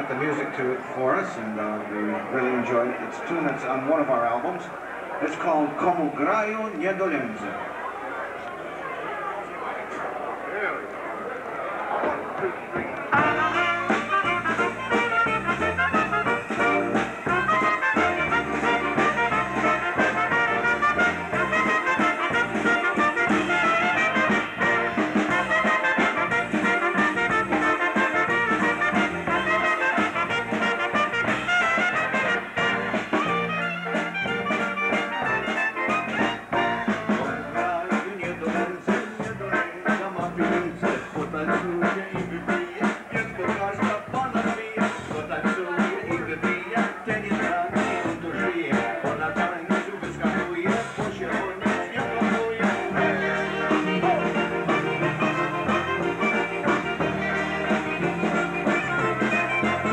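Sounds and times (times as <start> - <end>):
keyboard: 0.0 - 59.9
drum kit beat: 12.8 - 59.9
trumpet: 13.1 - 59.9.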